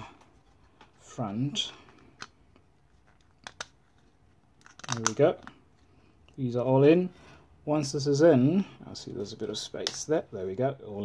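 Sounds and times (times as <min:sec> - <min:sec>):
plastic parts clicking together: 0:03.0 - 0:05.6.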